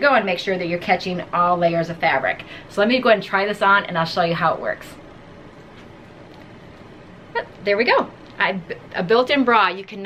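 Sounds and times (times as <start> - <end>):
low room tone hiss: 0.0 - 10.0.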